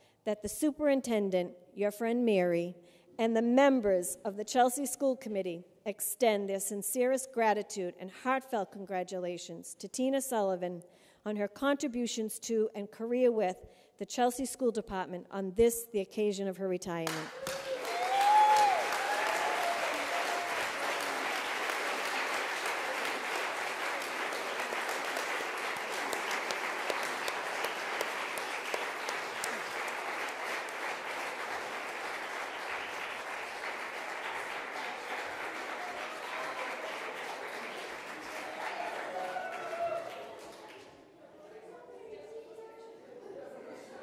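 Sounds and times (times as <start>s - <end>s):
crowd applauding: 17.1s - 41.0s
murmur of voices: 40.3s - 44.0s.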